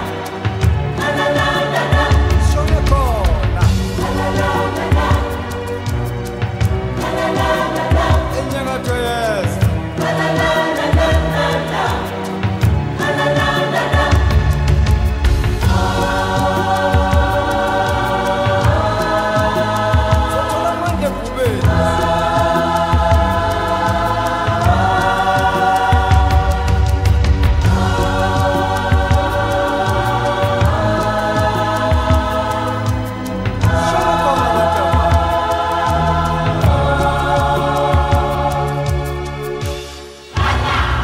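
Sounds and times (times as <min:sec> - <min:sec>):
choir singing held chords: 0:00.0 - 0:41.0
steady bass line: 0:00.8 - 0:39.8.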